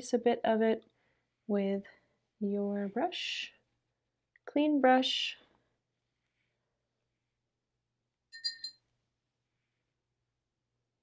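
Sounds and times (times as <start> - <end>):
paintbrush clinking against cup: 8.3 - 8.9.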